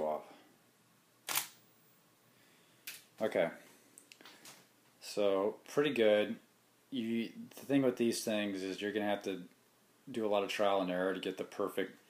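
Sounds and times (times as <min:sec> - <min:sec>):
camera shutter firing: 0:01.3 - 0:01.7.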